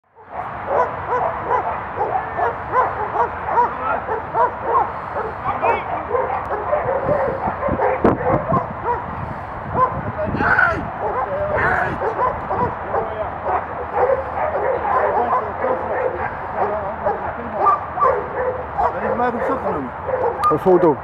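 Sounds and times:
dog barking rapidly: 0.2s - 20.5s.

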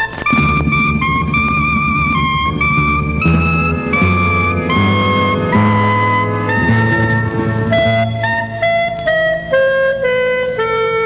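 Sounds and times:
clarinet melody: 0.0s - 11.0s
orchestral accompaniment: 0.2s - 10.7s.

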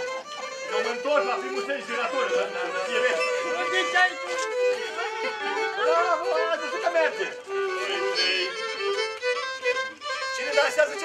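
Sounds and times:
violins playing folk dance tune: 0.0s - 11.0s.

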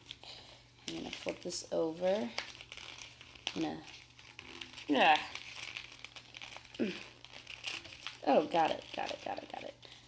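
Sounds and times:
paper rustling and crinkling: 0.9s - 10.0s.

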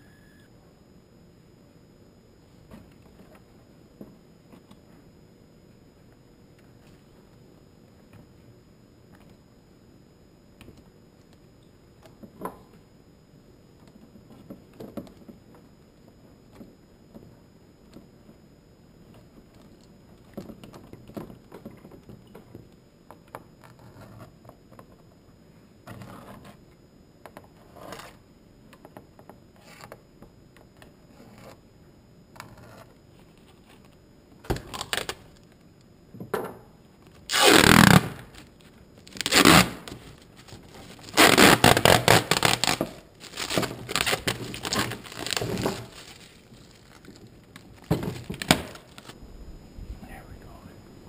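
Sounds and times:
plastic sheet scraping: 39.1s - 49.2s.

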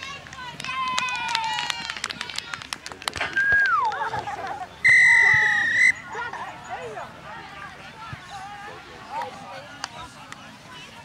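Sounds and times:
referee's whistle: 4.8s - 6.2s.

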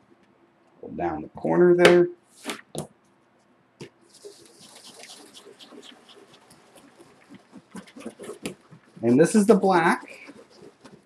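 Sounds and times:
paper rustling: 2.3s - 2.8s, 4.0s - 11.0s
baren rubbing over paper: 4.0s - 11.0s.

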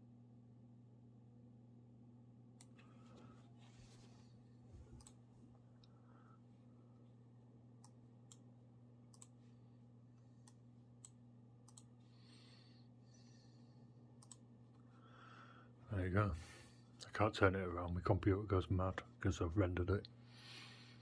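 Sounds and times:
faint steady hum: 0.0s - 21.0s
computer mouse clicks: 5.0s - 5.2s, 9.1s - 9.4s, 10.4s - 11.9s, 14.2s - 14.4s.

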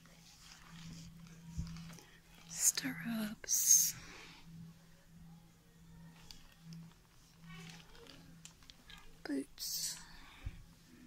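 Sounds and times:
faint murmured voices: 0.0s - 11.0s.

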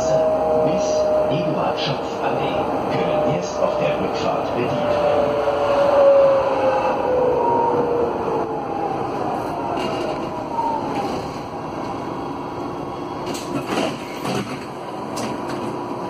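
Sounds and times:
tram motor whine gliding down: 0.0s - 16.0s.

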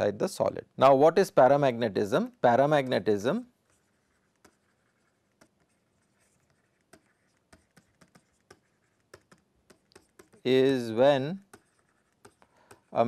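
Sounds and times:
stylus tapping on tablet screen: 3.6s - 10.6s, 11.4s - 13.0s.

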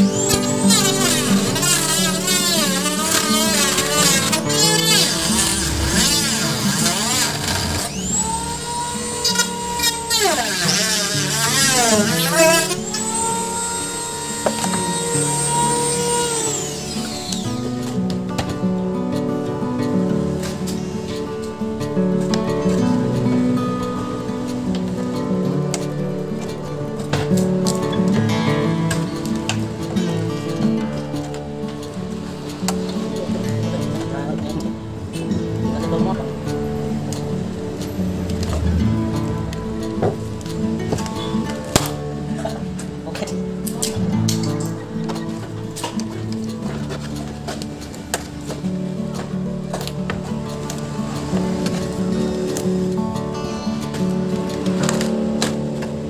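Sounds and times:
cordless drill whining: 0.0s - 18.0s.

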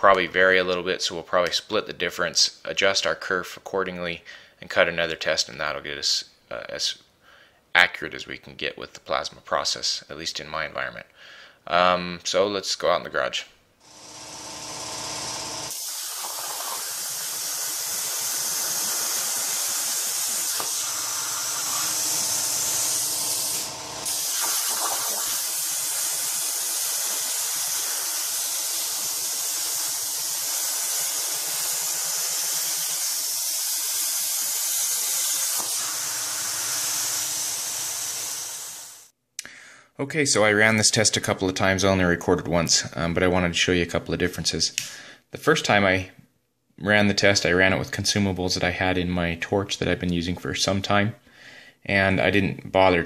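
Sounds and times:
plasma torch cutting steel hiss: 15.0s - 39.1s.

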